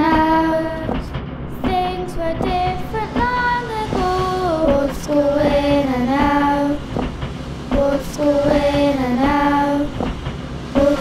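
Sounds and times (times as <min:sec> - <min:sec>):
child singing slow melody: 0:00.0 - 0:06.8, 0:07.7 - 0:10.0, 0:10.8 - 0:11.0.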